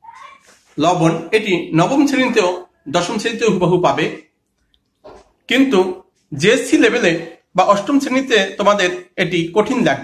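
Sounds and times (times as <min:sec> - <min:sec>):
faint high-pitched cry: 0:00.0 - 0:00.6
man speaking: 0:00.8 - 0:04.4, 0:05.5 - 0:10.0.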